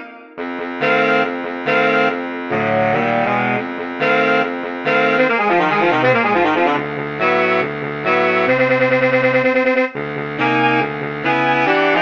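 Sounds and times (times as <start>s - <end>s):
saxophone quartet playing: 0.5s - 12.0s.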